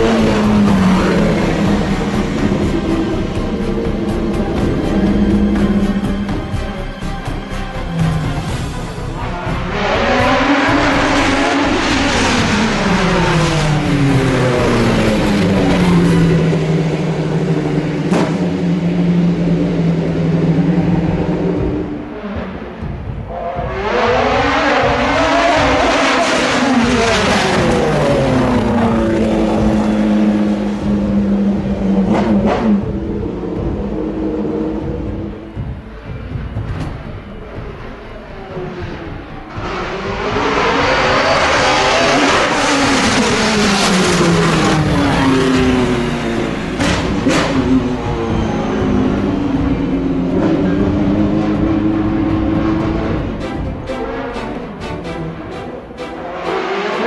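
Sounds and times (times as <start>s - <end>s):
race cars passing at full throttle: 0.0s - 6.6s, 9.2s - 57.0s.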